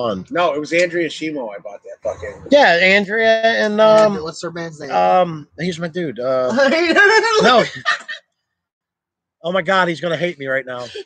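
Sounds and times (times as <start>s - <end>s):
man laughing and talking: 1.7s - 3.0s, 3.6s - 4.3s, 6.3s - 8.2s, 10.7s - 11.0s.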